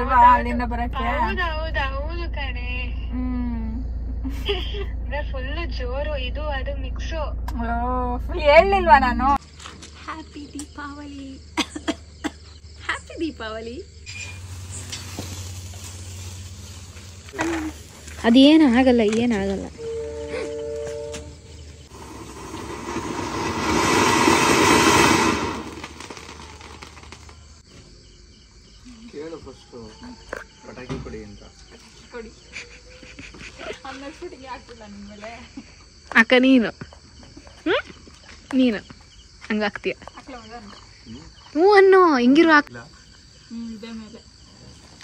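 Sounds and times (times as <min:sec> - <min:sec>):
crickets trilling: 0:00.0 - 0:45.0
firework fountain hissing: 0:14.1 - 0:18.3, 0:21.8 - 0:27.5.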